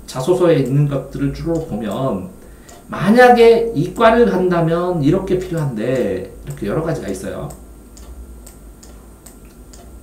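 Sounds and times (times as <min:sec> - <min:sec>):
faint regular ticking: 0:00.0 - 0:10.0
low steady room hum: 0:00.0 - 0:10.0.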